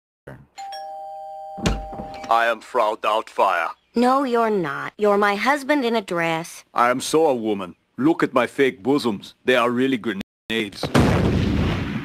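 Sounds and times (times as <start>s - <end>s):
two-tone doorbell chime: 0.6s - 2.3s
loud thump: 10.8s - 12.0s.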